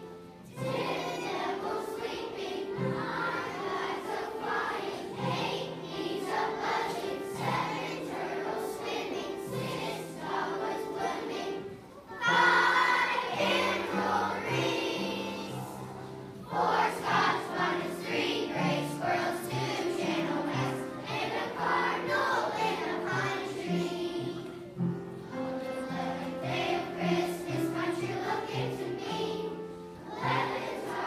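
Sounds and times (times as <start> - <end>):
children's choir singing: 0.0 - 31.0
piano accompaniment: 0.0 - 31.0.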